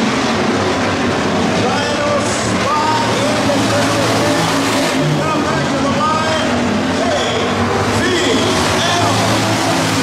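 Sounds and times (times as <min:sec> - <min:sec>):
race car engines: 0:00.0 - 0:10.0
spectators chattering: 0:00.0 - 0:10.0.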